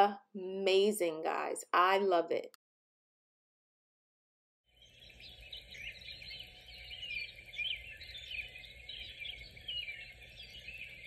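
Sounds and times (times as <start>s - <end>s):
small birds chirping: 4.7s - 11.0s.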